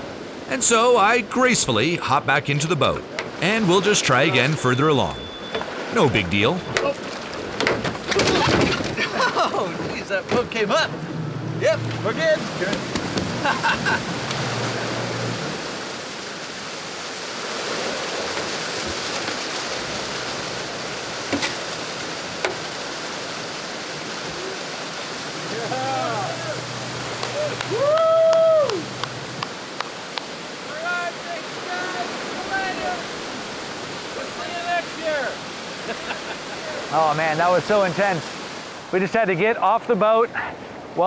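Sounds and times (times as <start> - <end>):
waterfalls rushing: 0.0 - 39.4
surf breaking on rocks: 12.0 - 39.0.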